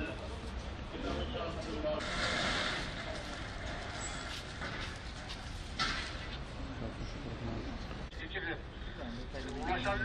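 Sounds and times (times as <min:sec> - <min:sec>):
faint indistinct voices: 0:00.0 - 0:10.0
low street rumble: 0:00.0 - 0:10.0.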